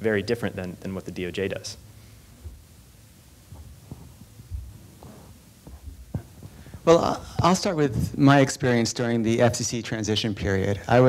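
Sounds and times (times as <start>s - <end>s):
faint steady hum: 0.0s - 11.0s
microphone handling thumps: 2.3s - 8.5s, 10.3s - 11.0s.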